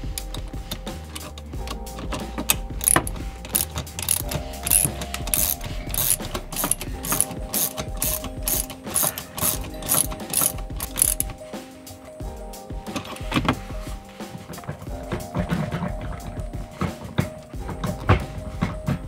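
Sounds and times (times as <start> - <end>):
socket ratchet clicking: 0.2 - 11.4.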